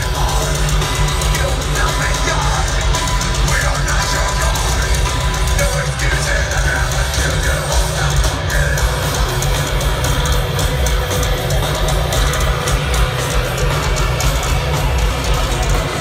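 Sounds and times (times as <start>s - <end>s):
drums: 0.0s - 16.0s
live heavy metal band: 0.0s - 16.0s.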